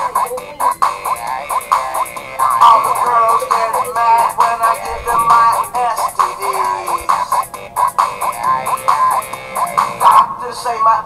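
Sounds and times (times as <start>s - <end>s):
comedy song through phone speaker: 0.0s - 11.0s.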